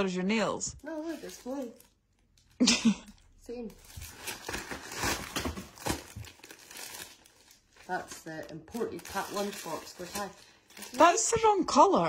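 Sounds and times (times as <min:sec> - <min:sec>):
plastic packaging crinkling: 0:00.7 - 0:02.7, 0:03.4 - 0:11.6.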